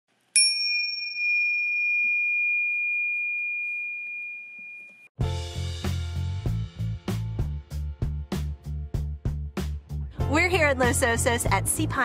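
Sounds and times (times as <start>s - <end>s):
bell-like ding: 0.4s - 5.1s
music with bass and drum beat: 5.2s - 12.0s.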